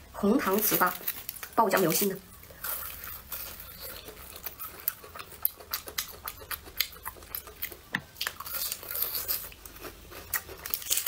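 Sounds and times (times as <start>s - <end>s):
crunching and chewing fried food: 0.4s - 11.0s.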